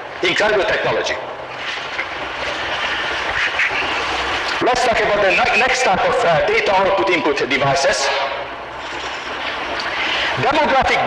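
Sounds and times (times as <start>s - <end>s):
low hum: 0.0s - 11.0s
tape hiss: 0.0s - 11.0s.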